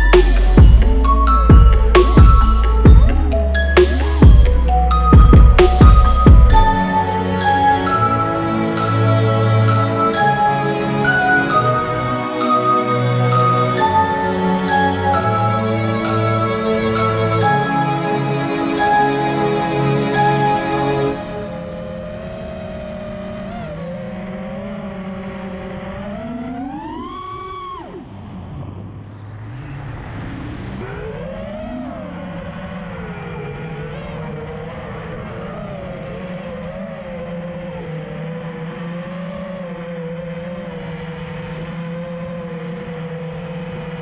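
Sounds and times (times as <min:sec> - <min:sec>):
quadcopter motors whining: 0:20.2 - 0:44.0.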